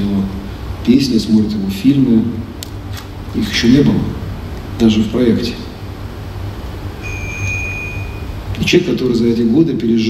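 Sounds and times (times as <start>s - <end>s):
low steady hum: 0.0s - 10.0s
thin high steady tone: 7.0s - 8.9s.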